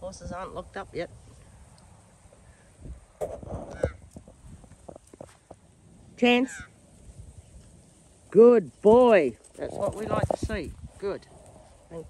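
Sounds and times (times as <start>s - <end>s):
footsteps in dry grass: 3.2s - 6.0s.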